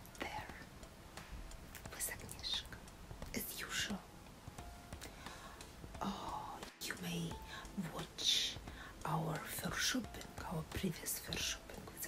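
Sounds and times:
woman whispering: 0:00.2 - 0:00.7, 0:01.8 - 0:02.8, 0:03.4 - 0:04.0, 0:06.0 - 0:12.0.

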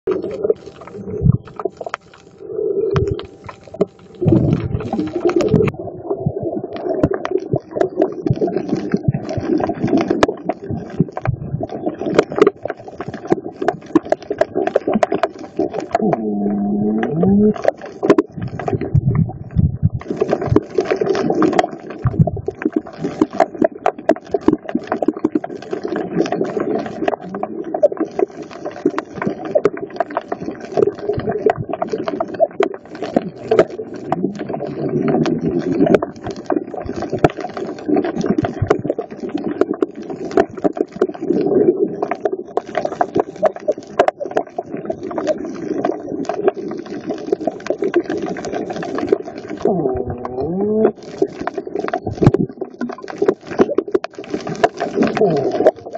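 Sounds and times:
steady low underwater hum: 0:00.1 - 0:55.9
underwater crackle of clicks: 0:00.1 - 0:55.9.

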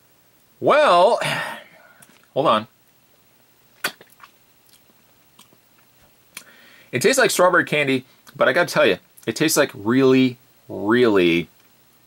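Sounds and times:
tongue clicks: 0:03.8 - 0:06.5
wet lip smacks: 0:03.8 - 0:06.5.

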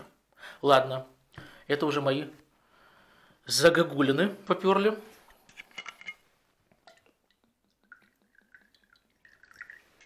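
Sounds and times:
liquid trickling into glass: 0:06.8 - 0:10.0.

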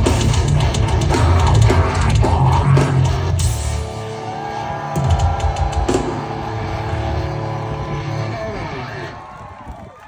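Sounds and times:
heavy metal band playing live: 0:00.0 - 0:09.5.

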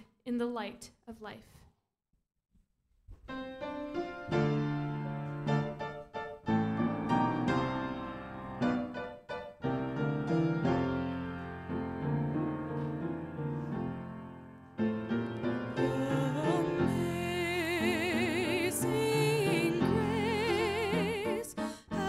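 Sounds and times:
piano chords: 0:03.3 - 0:22.0.

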